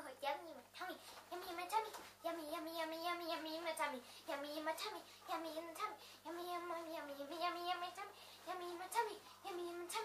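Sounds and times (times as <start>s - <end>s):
girl singing held notes: 0.0s - 10.0s.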